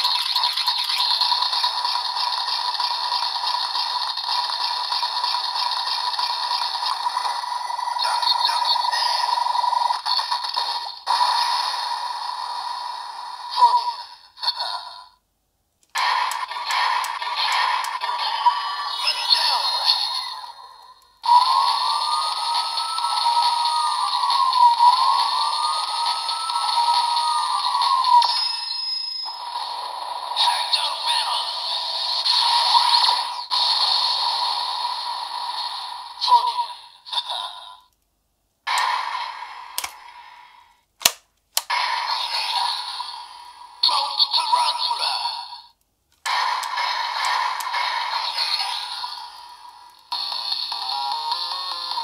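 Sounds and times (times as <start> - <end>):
toy electronic sound effects and music: 0.0 - 11.1, 16.0 - 20.6, 21.2 - 34.2, 50.0 - 52.0
sharp clicks: 39.8 - 40.0, 41.0 - 41.7.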